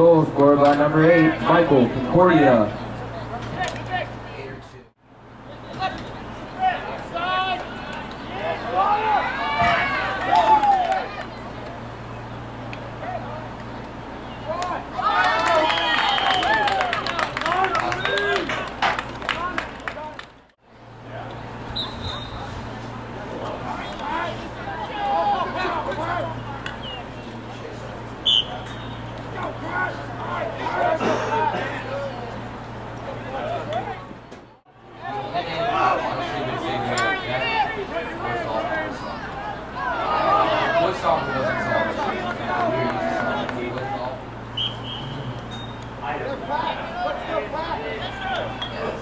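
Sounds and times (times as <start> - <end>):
spectators' voices: 0.0 - 49.0
people shouting and calling: 5.5 - 11.6, 14.4 - 20.1, 21.0 - 49.0
referee's whistle blast: 28.2 - 29.1, 44.5 - 45.9
steady low hum: 36.0 - 49.0.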